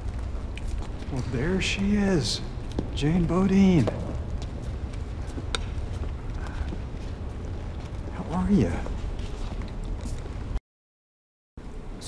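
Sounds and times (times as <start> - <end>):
low room rumble: 0.0 - 10.6.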